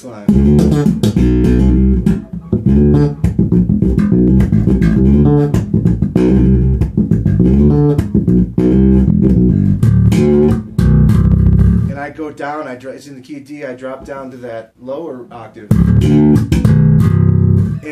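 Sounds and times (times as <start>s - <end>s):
funk electric bass line: 0.3s - 12.0s, 15.7s - 17.9s.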